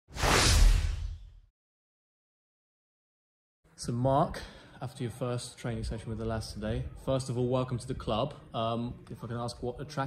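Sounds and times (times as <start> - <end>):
whoosh sound effect: 0.1 - 1.4.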